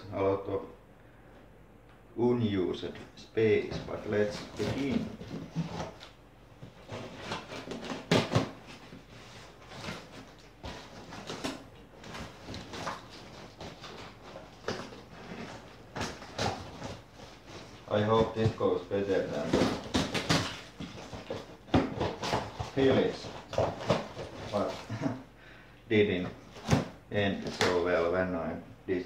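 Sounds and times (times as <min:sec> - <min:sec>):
cardboard flaps rustling: 0:03.5 - 0:25.2, 0:26.2 - 0:28.0.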